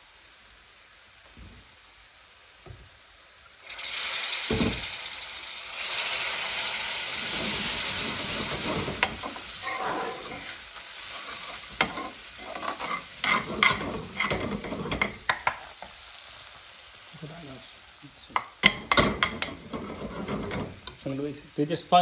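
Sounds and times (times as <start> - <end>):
paste sizzling in a hot pan: 0.0 - 22.0
metal spoon scraping a pan: 7.2 - 15.7, 18.6 - 21.0
spoon clicking on pan: 13.3 - 15.6, 18.4 - 19.6.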